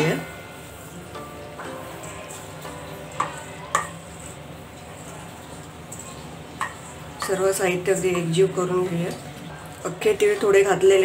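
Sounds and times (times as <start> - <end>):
spoon clinking on metal bowl: 2.0 - 4.4.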